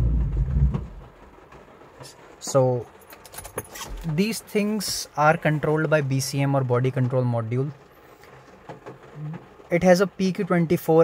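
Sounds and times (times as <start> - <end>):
windscreen wiper sweep: 0.0 - 3.0.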